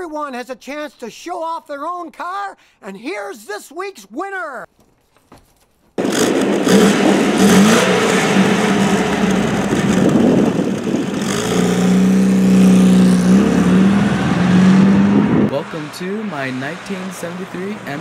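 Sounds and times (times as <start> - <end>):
car engine running: 6.0 - 18.0.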